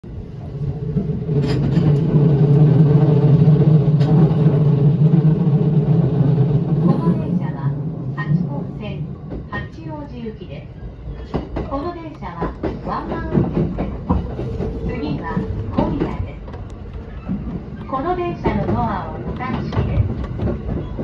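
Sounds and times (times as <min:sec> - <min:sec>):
train rumbling inside carriage: 0:00.0 - 0:21.0.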